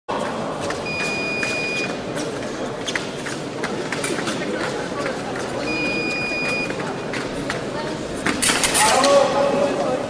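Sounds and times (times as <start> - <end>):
sports hall noise: 0.1 - 10.0
scoring machine tone: 0.9 - 1.9.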